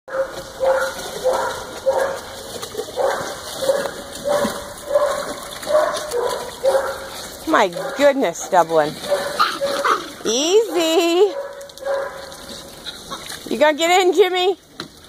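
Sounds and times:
dog barking: 0:00.1 - 0:02.2, 0:03.0 - 0:07.1, 0:07.8 - 0:08.1, 0:09.0 - 0:10.1, 0:10.7 - 0:12.3.

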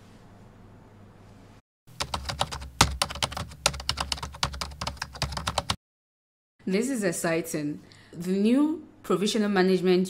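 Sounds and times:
keyboard typing: 0:01.9 - 0:05.8.

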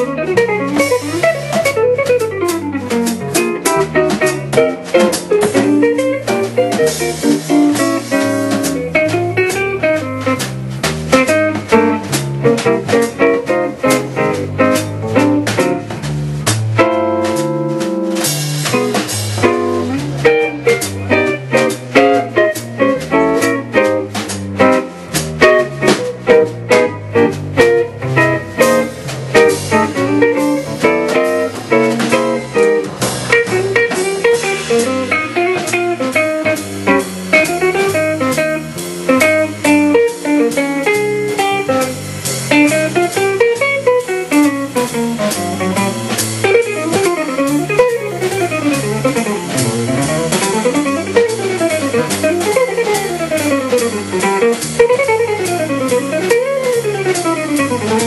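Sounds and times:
drum kit keeping time: 0:00.0 - 0:58.0
walking electric bass: 0:00.0 - 0:58.0.

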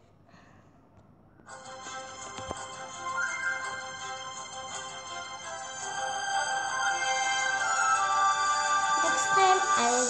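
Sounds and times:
electronic game music: 0:02.0 - 0:07.6.

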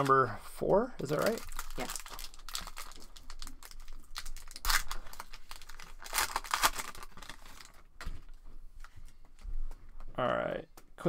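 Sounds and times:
foil wrapper tearing and crinkling: 0:01.0 - 0:07.8.

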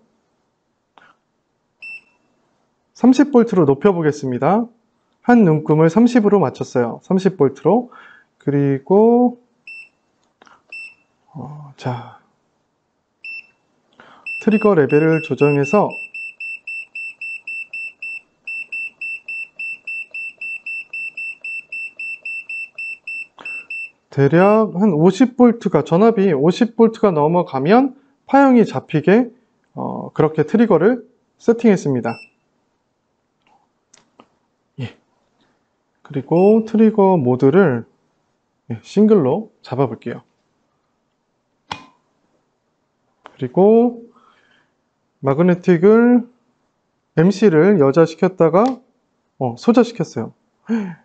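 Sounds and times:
high electronic key beep: 0:14.3 - 0:24.0.

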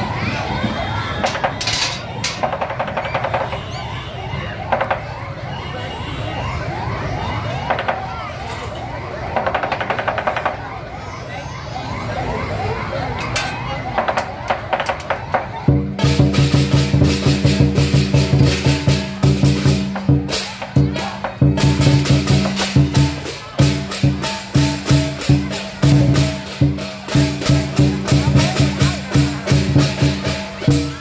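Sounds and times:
crowd noise: 0:00.0 - 0:31.0
rattling rolls: 0:01.2 - 0:03.5
drum cymbals and gong beat: 0:15.8 - 0:31.0.

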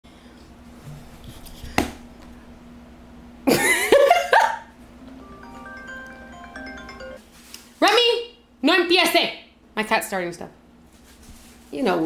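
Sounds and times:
soft chime-like music: 0:05.0 - 0:07.2.

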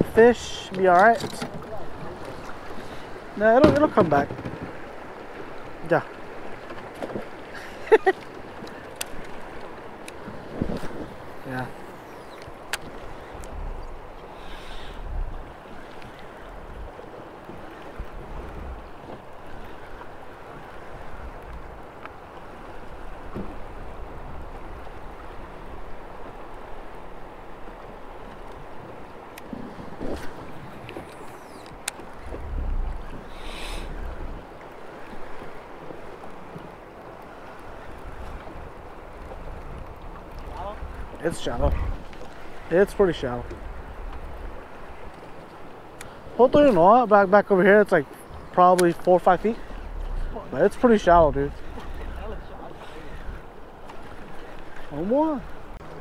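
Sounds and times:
river water flowing: 0:00.0 - 0:56.0
faint clicks: 0:08.2 - 0:10.3, 0:12.2 - 0:15.0, 0:29.3 - 0:35.5, 0:45.1 - 0:46.2, 0:48.1 - 0:50.3
wind gusting on microphone: 0:10.2 - 0:19.8, 0:28.6 - 0:35.6, 0:37.7 - 0:46.7.

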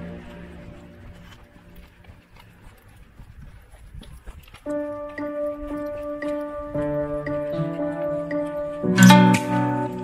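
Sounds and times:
faint street ambience: 0:00.0 - 0:10.0
footsteps on pavement: 0:00.0 - 0:10.0.

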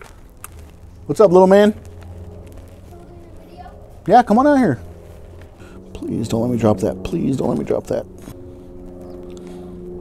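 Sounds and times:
machine hum: 0:00.0 - 0:10.0.

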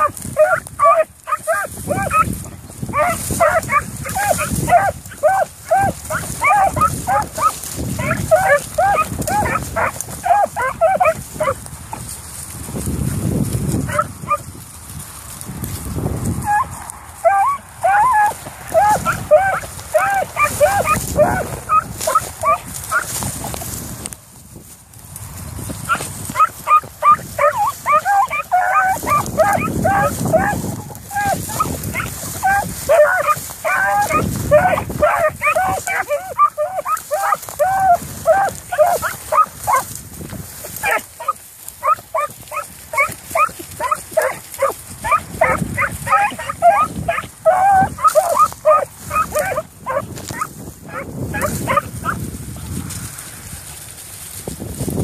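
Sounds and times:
dogs baying: 0:00.0 - 0:12.0, 0:13.8 - 0:14.4, 0:16.4 - 0:23.6, 0:25.8 - 0:40.0, 0:40.6 - 0:52.2
wind rumbling on microphone: 0:00.0 - 0:55.0.

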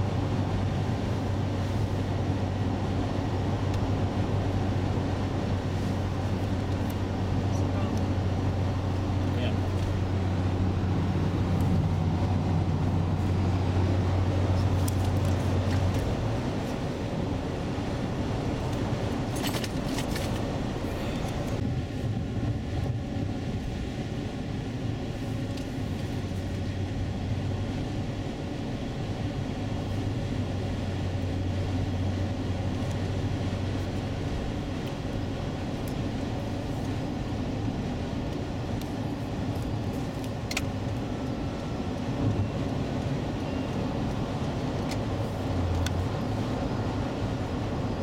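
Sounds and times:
car cabin road and engine drone: 0:00.0 - 0:48.0.

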